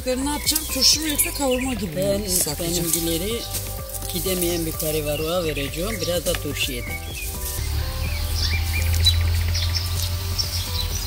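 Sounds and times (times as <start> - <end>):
birds chirping: 0.0 - 11.0
soft background music: 0.0 - 11.0.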